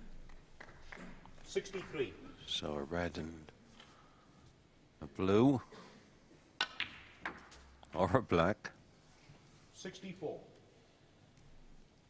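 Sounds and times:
snooker balls clicking: 0:06.6 - 0:07.9.

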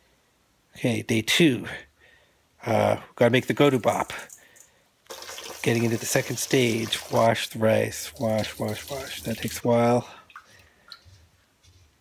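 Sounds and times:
small drips: 0:04.1 - 0:11.3.

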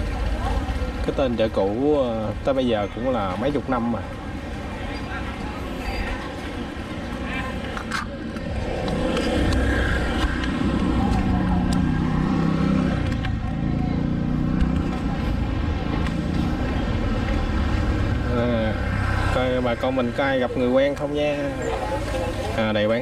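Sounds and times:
motor scooter engine passing: 0:08.4 - 0:20.8.

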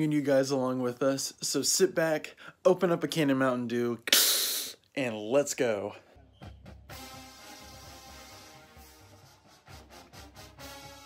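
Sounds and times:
background music: 0:06.1 - 0:11.0.

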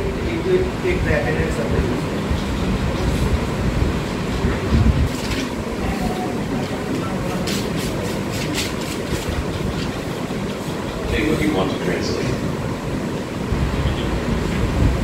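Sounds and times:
classroom background rumble: 0:00.0 - 0:15.0.

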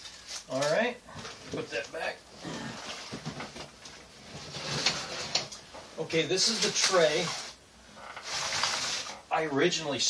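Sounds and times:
plastic tray rustling: 0:02.7 - 0:09.3.

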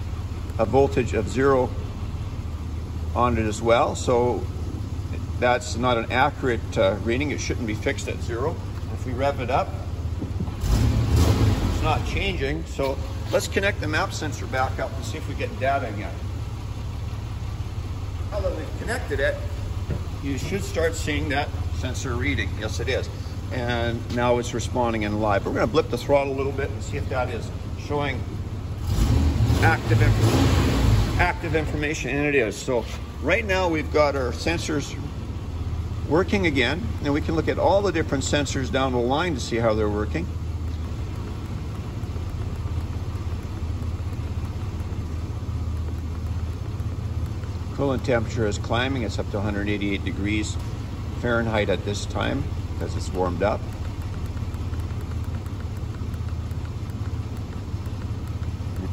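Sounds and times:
car engine idling: 0:00.0 - 0:58.9.

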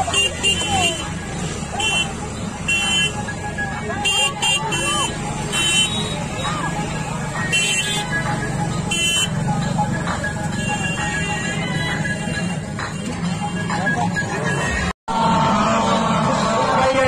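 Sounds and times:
vehicle horns beeping: 0:00.0 - 0:06.7, 0:07.4 - 0:09.5, 0:10.4 - 0:16.2
motorcycle and car engines running: 0:00.0 - 0:14.8
people talking: 0:00.0 - 0:14.8.

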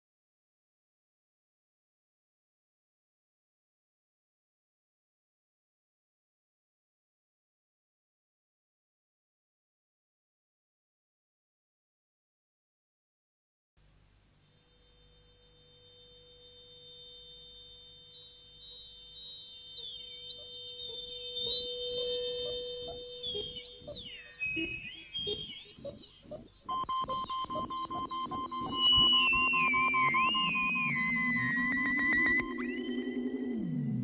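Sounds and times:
electronic feedback music: 0:14.6 - 0:34.0.

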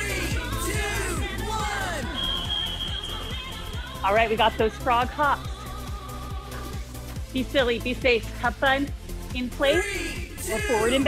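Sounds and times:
upbeat workout music: 0:00.0 - 0:11.0.

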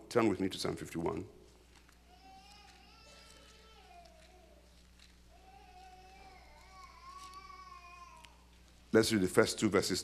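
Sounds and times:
faint high-pitched cry: 0:02.1 - 0:08.5.

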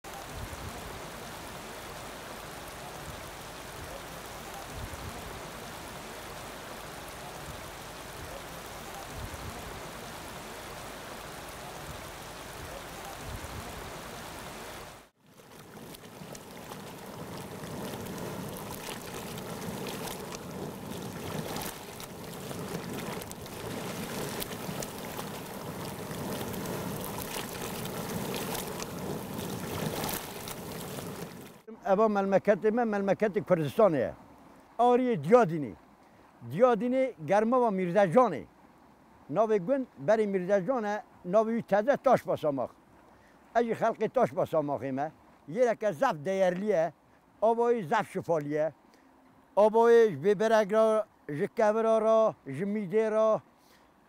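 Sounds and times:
water flowing and bubbling: 0:00.1 - 0:31.7
wind on microphone: 0:00.2 - 0:01.2, 0:04.7 - 0:05.5, 0:09.1 - 0:10.0, 0:11.8 - 0:14.1, 0:15.6 - 0:31.6
water splashing and popping: 0:15.0 - 0:31.7.

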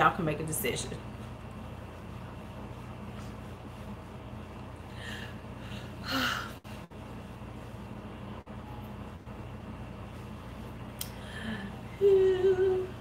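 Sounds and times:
low room hum: 0:00.0 - 0:13.0
woman humming: 0:11.3 - 0:13.0.

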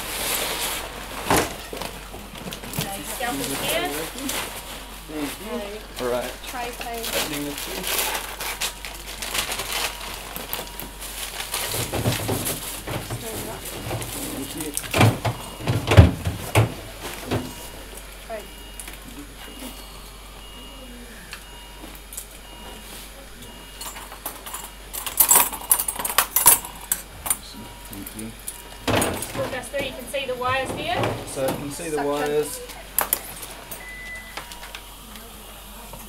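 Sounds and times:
sterile packaging being handled: 0:06.6 - 0:17.7
short electronic beeps: 0:33.8 - 0:34.7.

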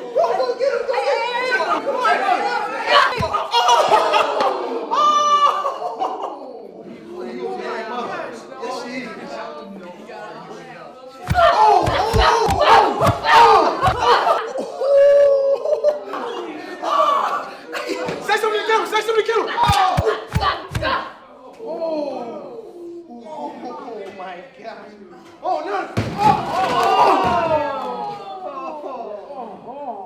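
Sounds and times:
crowd shouting: 0:00.0 - 0:06.3, 0:11.2 - 0:15.4, 0:16.2 - 0:21.4
teenagers chattering: 0:00.0 - 0:14.8, 0:15.9 - 0:26.0
fighters yelling: 0:00.1 - 0:05.9, 0:11.2 - 0:14.7, 0:16.7 - 0:21.2
punches and kicks thudding: 0:11.2 - 0:14.2, 0:19.6 - 0:21.1.

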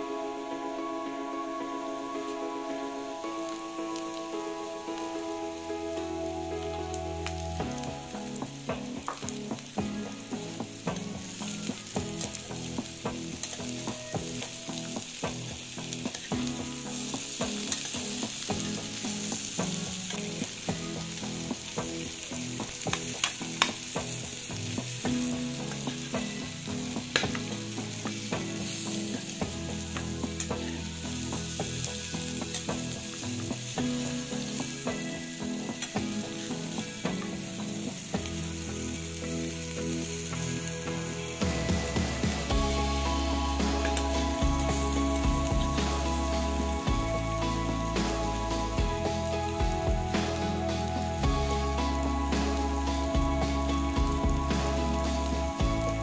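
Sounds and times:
potatoes sizzling in oil: 0:00.0 - 0:56.0.

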